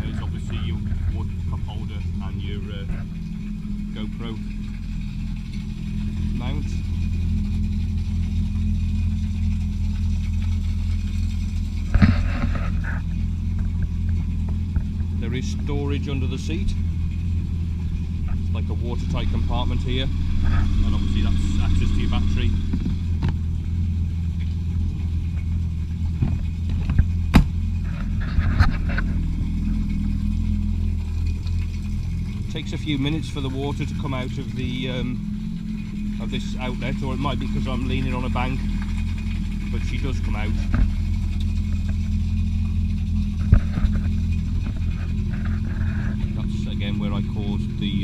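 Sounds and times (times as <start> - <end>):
jet ski engine idling: 0.0 - 48.0
hose flushing water: 5.8 - 48.0.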